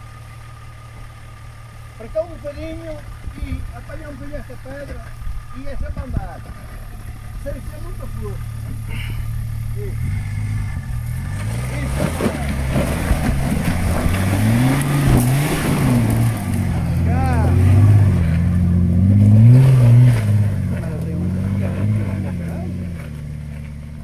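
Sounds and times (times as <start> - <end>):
engine revving: 1.4 - 24.0.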